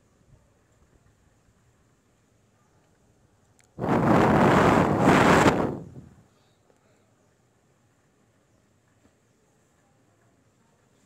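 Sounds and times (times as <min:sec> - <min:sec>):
storm wind buffeting microphone: 0:03.8 - 0:06.2.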